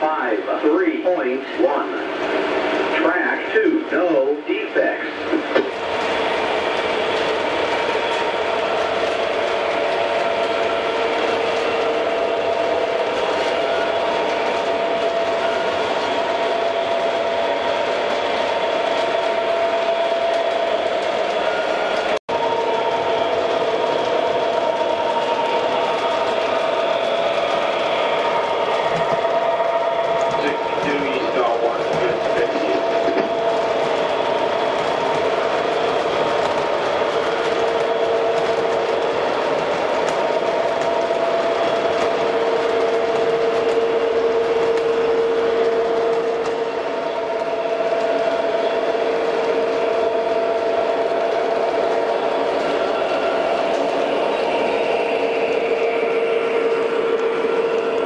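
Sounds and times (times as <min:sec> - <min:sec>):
model locomotive engine hum: 0:00.0 - 0:58.0
model freight cars rolling: 0:05.3 - 0:57.8.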